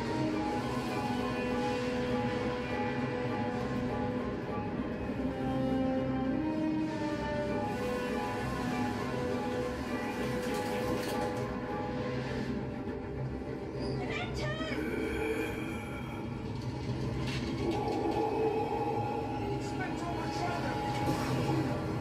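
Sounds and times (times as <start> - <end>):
sustained ride music: 0.0 - 22.0
train compartment rumble: 0.0 - 22.0.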